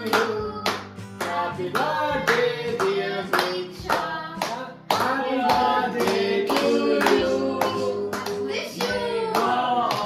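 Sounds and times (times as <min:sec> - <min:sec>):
group clapping in time: 0:00.0 - 0:10.0
people singing: 0:00.0 - 0:10.0.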